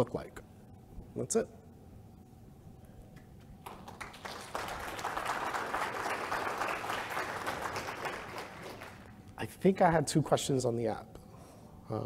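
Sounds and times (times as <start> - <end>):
audience applauding: 3.6 - 9.1.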